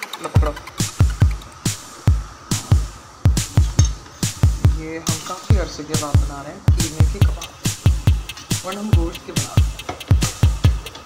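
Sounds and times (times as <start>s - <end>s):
kick drum thumps: 2.1s - 4.9s, 5.5s - 8.4s, 9.0s - 11.0s.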